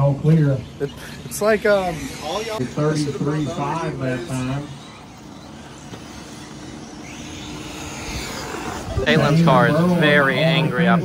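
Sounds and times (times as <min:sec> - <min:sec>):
model buggy engine whine: 0:00.0 - 0:11.0.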